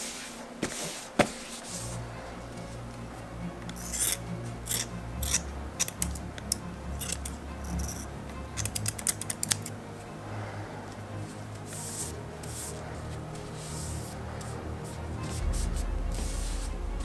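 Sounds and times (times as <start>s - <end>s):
scissors snipping cloth: 8.6s - 9.7s.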